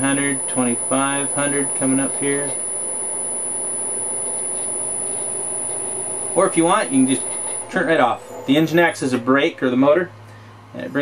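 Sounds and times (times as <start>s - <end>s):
centrifuge motor whine: 0.0s - 7.7s.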